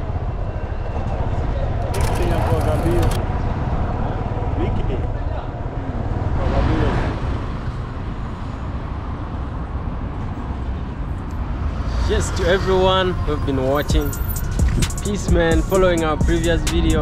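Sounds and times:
indistinct voices of passers-by: 0.0 - 17.0
traffic rumble: 0.0 - 17.0.

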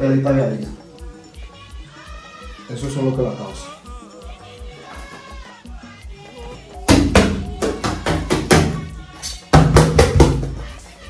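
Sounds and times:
music: 0.0 - 11.0
loud percussive knocks: 9.5 - 10.6.

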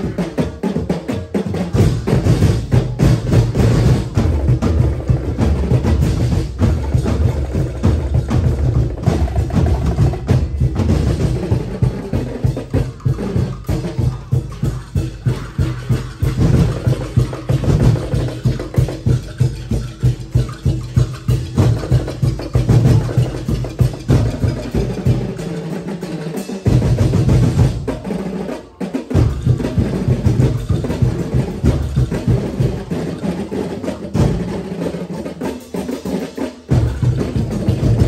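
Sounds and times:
drums playing driving beat: 0.0 - 38.0.

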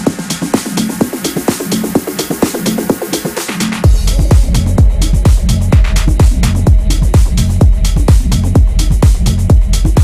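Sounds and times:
four-on-the-floor kick drum: 0.0 - 10.0
heavy bass line: 0.0 - 10.0
hi-hats: 0.0 - 10.0.

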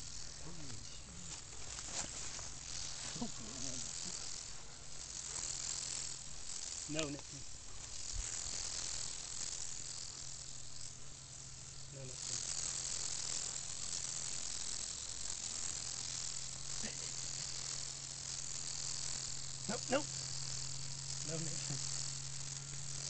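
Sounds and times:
insects chirping: 0.0 - 23.0.

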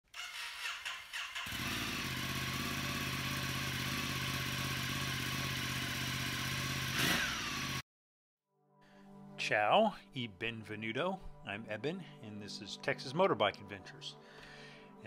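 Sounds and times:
motorcycle engine starting and idling: 0.1 - 7.8.

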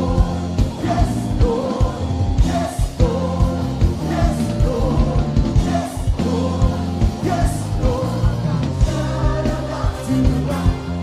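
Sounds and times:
drum beat: 0.0 - 11.0
electric bass guitar: 0.0 - 11.0
group singing: 0.0 - 11.0
keyboard: 0.0 - 11.0.

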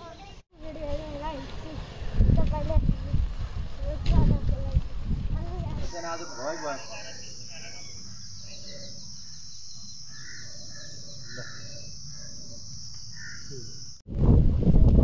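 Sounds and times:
wind rush: 1.0 - 6.0, 14.1 - 15.0
insect chirps: 5.8 - 14.1
high-pitched insect drone: 5.9 - 14.0.

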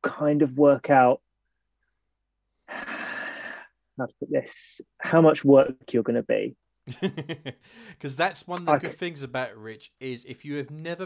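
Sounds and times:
man breathing through mouth: 7.6 - 8.0.

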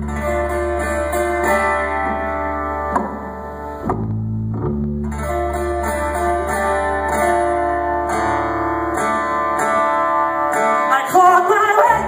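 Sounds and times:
guitar strumming chords: 0.0 - 12.0
person singing: 10.6 - 12.0.

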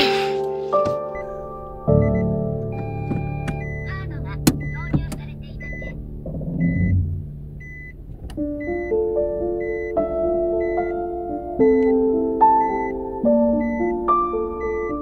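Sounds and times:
background music: 0.0 - 15.0
car engine and road rumble: 2.6 - 10.5.

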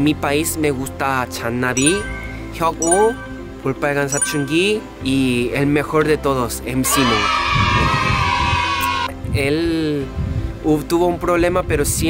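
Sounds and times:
background music with low beat: 1.8 - 5.1.

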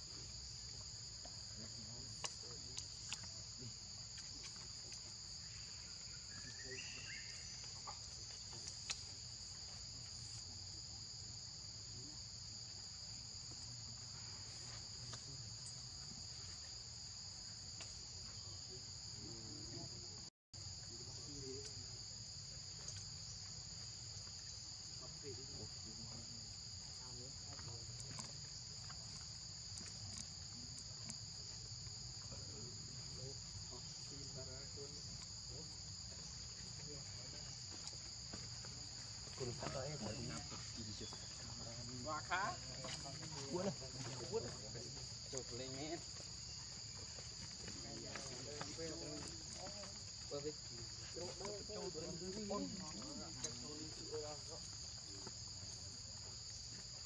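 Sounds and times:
insects droning: 0.0 - 57.0.

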